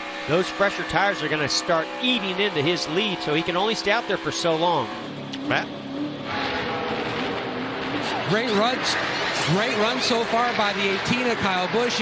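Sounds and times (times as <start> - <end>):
race car engine at moderate revs: 0.0 - 12.0.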